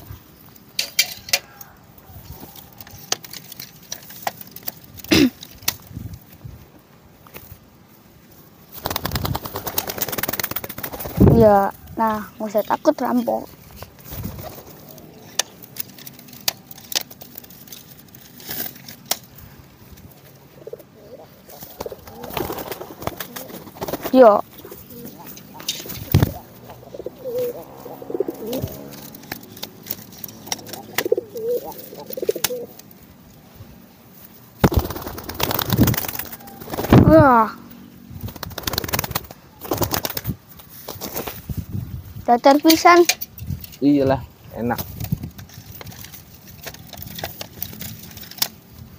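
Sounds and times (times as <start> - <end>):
pigeons cooing: 14.2 - 15.7, 20.3 - 32.9
pigeon call: 24.6 - 29.0, 36.0 - 37.0.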